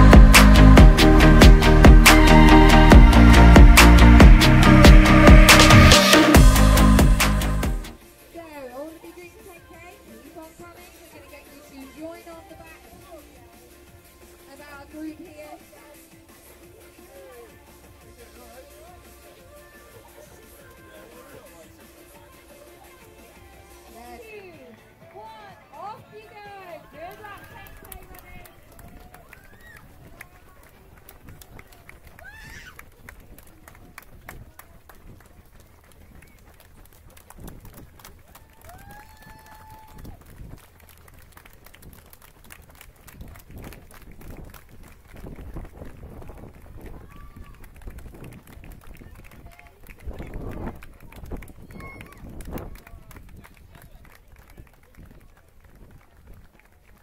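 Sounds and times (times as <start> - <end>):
running footsteps on tarmac: 24.0 - 57.0.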